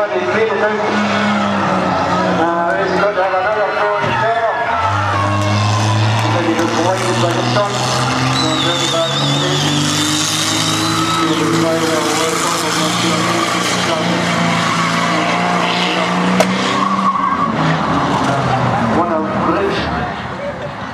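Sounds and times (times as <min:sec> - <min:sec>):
car engine at high revs: 0:00.0 - 0:03.2, 0:04.6 - 0:20.8
tyres squealing and skidding: 0:00.0 - 0:20.9.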